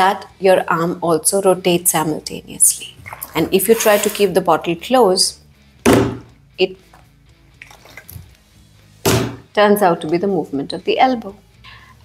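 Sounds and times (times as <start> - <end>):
water sloshing in bottle: 3.0 - 4.3, 7.6 - 8.3.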